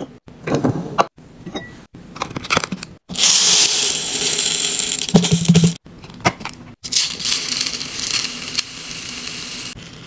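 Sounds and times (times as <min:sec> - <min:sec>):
beads pouring into glass jar: 0:03.2 - 0:05.6, 0:06.9 - 0:08.4.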